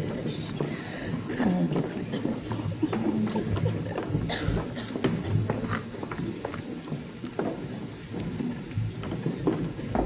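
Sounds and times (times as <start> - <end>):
murmur of voices in a hall: 0.0 - 10.0.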